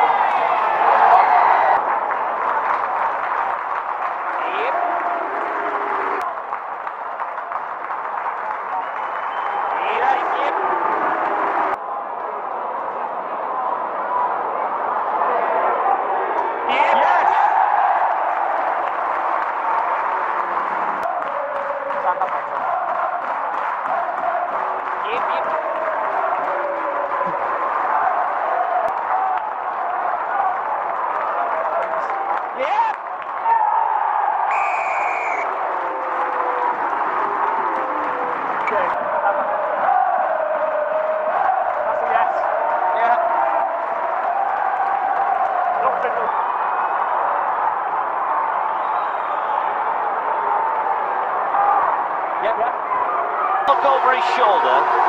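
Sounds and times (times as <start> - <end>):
stadium crowd hubbub: 0.0 - 55.0.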